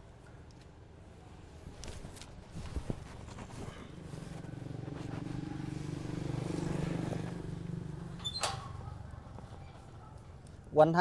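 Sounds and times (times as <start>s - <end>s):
vehicle engine passing by: 4.0s - 9.4s.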